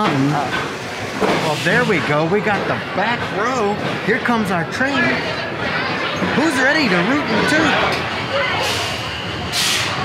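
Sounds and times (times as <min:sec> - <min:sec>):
faint voices: 0:00.0 - 0:10.0
compressed air hiss: 0:08.6 - 0:10.0.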